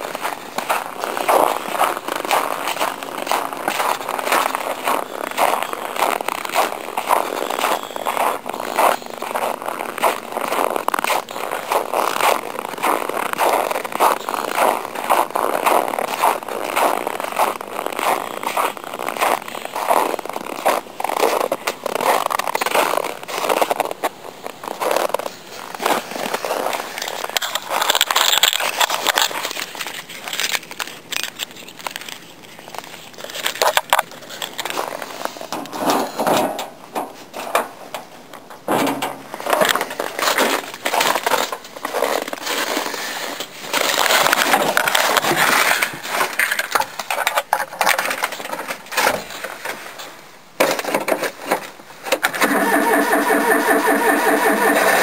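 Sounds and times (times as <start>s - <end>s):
snow crunching and rustling: 0.0s - 35.5s.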